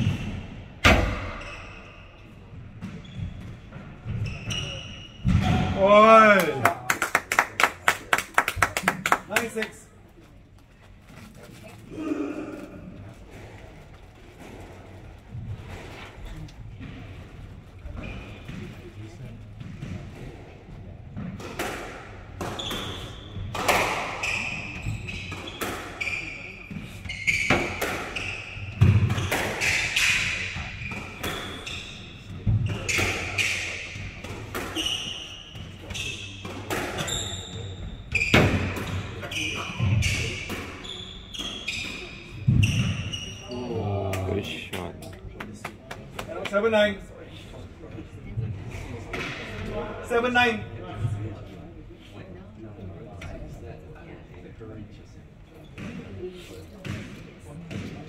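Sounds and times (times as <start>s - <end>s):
sneakers squeaking on wooden floor: 0.0s - 5.8s, 22.4s - 43.8s.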